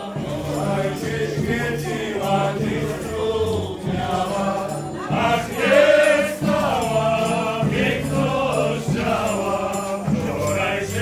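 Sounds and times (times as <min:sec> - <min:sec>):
drum: 0:00.0 - 0:11.0.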